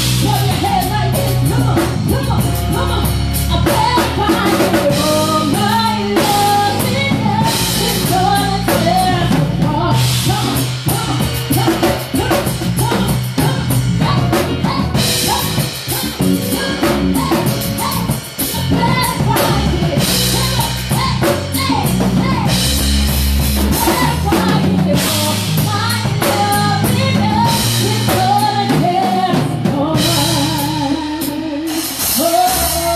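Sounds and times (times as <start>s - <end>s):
woman singing into microphone: 0.0s - 22.8s, 23.6s - 32.9s
low bass line: 0.0s - 28.6s
drum kit: 0.0s - 32.9s.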